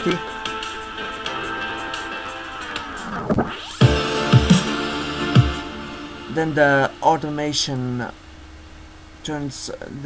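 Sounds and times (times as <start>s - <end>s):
sustained pad chords: 0.0s - 9.2s
kick drums: 3.8s - 5.8s.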